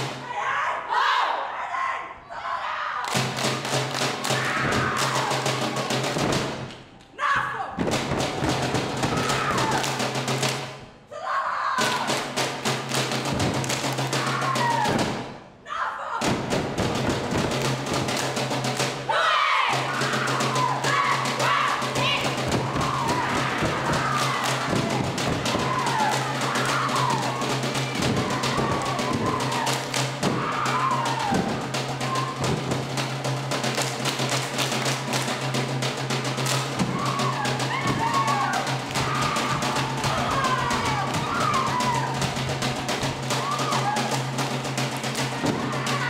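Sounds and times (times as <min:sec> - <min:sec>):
drum: 0:00.0 - 0:00.3, 0:03.1 - 0:10.9, 0:11.8 - 0:15.6, 0:16.2 - 0:46.0.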